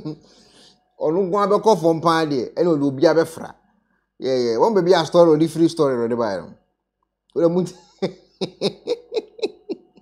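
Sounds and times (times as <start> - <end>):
man laughing: 7.7 - 10.0.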